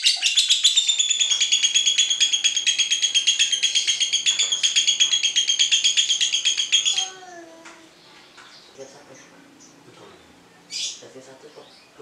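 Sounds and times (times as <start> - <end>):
bird chirping: 0.0 - 7.3, 8.0 - 12.0
harsh bird call: 0.0 - 7.3.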